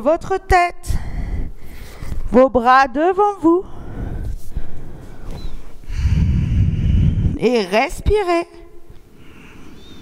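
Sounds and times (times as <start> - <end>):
person breathing out slowly: 3.7 - 7.3.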